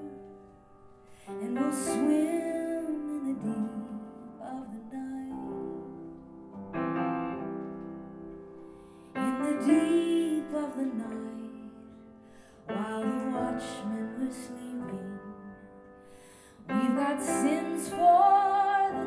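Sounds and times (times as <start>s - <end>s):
piano chords: 0.0s - 19.0s
woman singing: 1.3s - 6.1s, 9.2s - 12.0s, 12.6s - 15.7s, 16.5s - 19.0s.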